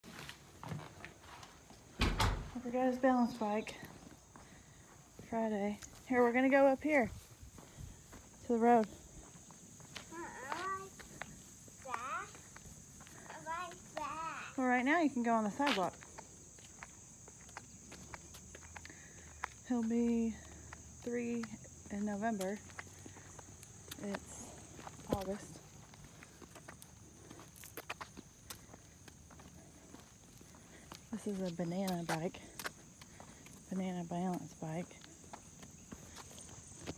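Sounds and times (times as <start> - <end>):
sneaker scuffs on concrete: 0.0 - 2.6, 7.0 - 14.5, 15.4 - 36.9.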